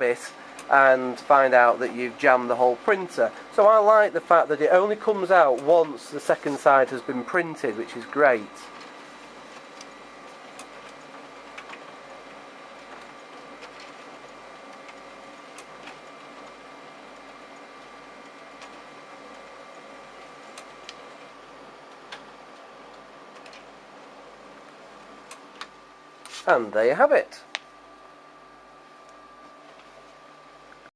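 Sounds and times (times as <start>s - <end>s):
printer motor hum and whine: 0.0s - 30.9s
printer paper feed clicks: 4.3s - 23.9s, 24.6s - 26.3s.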